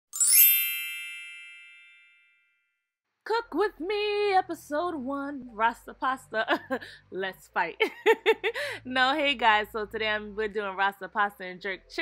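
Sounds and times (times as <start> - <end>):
bright chime sound effect: 0.1 - 2.8.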